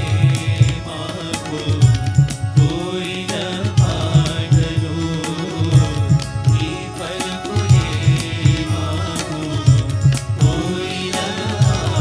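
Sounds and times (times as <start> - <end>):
group singing devotional song: 0.0 - 12.0
hand drum beat: 0.0 - 12.0.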